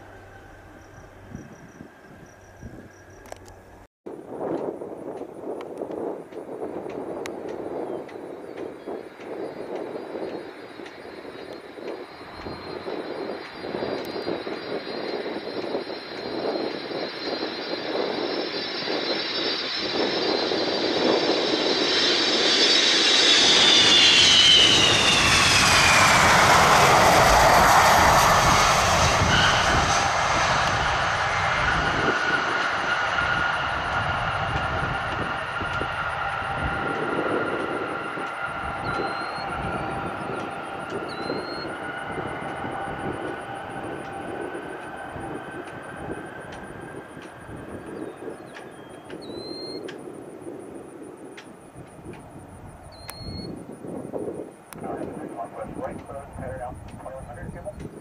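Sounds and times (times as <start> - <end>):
high jet whine: 0.0 - 58.0
jet aircraft flying past: 5.4 - 58.0.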